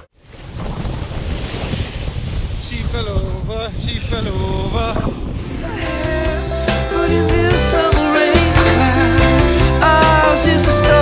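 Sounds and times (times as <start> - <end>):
wind rushing over microphone: 0.1 - 7.4.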